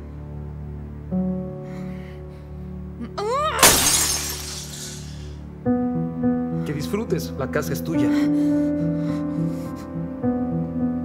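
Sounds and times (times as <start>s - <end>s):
background music chords: 0.0s - 11.0s
breakable object shattering: 3.6s - 5.4s.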